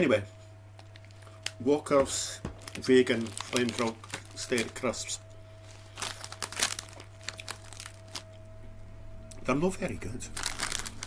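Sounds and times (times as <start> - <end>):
crisp packet crinkling: 2.6 - 8.4, 10.3 - 11.0.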